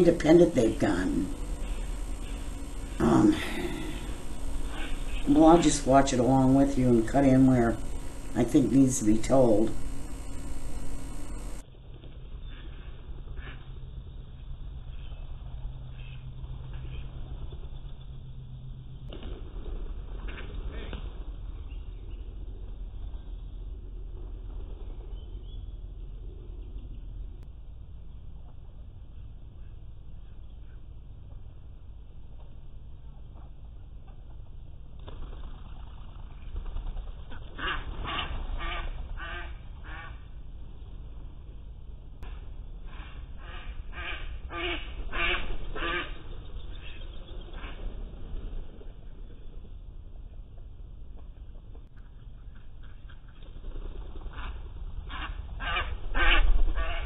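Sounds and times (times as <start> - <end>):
low outdoor background: 0.0 - 57.0
ducks quacking: 37.4 - 40.1, 54.3 - 57.0.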